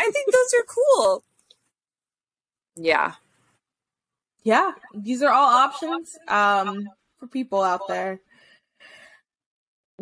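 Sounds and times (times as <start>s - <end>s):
woman speaking: 0.0s - 1.2s, 2.8s - 3.2s, 4.5s - 8.2s
faint breaths: 8.2s - 9.3s.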